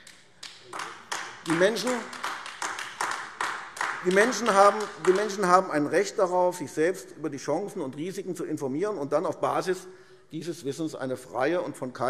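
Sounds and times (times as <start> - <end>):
sparse applause: 0.0 - 5.8.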